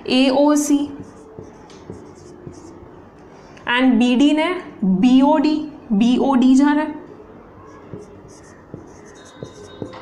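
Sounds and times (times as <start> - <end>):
marker writing on whiteboard: 0.6 - 2.8, 7.6 - 10.0.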